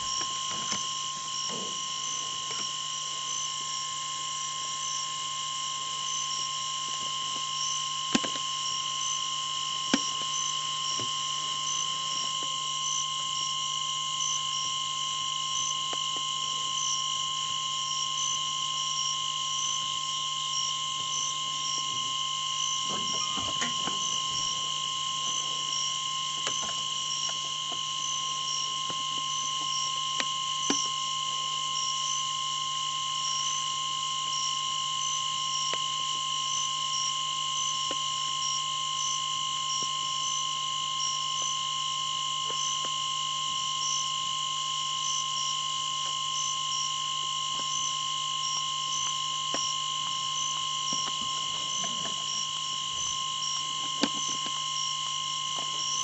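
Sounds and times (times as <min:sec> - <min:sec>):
night insects chorus: 0:00.0 - 0:56.0.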